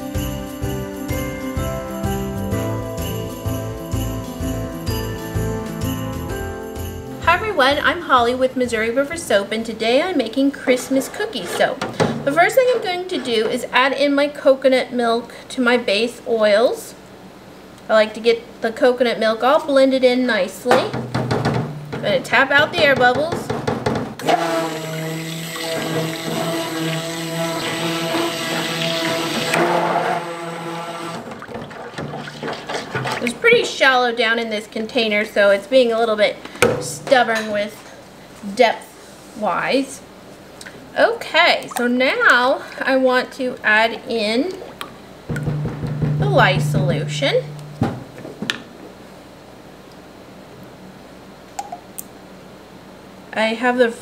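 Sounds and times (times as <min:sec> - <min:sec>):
stick blender motor hum: 0:24.2 - 0:31.4
plastic pitcher clicks and knocks: 0:45.3 - 0:48.6.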